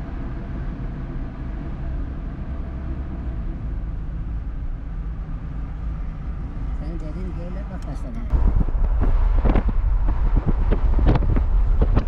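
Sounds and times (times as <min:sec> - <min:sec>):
car driving rumble: 0:00.0 - 0:12.0
wind buffeting microphone: 0:04.4 - 0:12.0.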